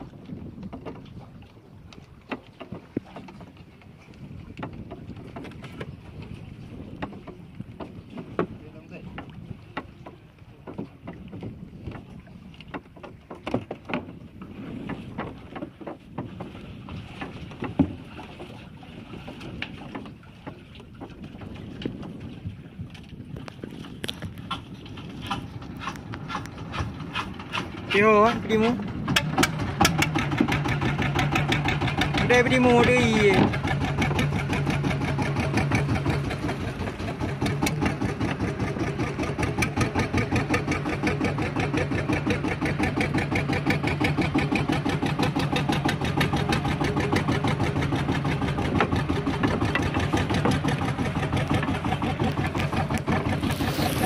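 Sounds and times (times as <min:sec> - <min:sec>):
knocks and clicks from boat: 0:00.0 - 0:54.0
water slapping against boat hull: 0:00.0 - 0:54.0
wind on microphone: 0:00.0 - 0:54.0.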